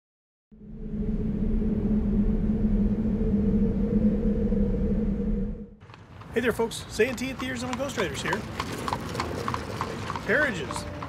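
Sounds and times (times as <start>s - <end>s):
low rumbling drone: 0.5s - 5.8s.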